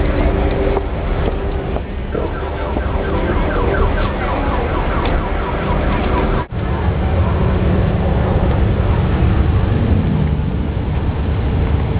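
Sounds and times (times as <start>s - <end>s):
electronic siren sweeps: 0.0s - 9.6s
low rumble: 0.0s - 11.9s.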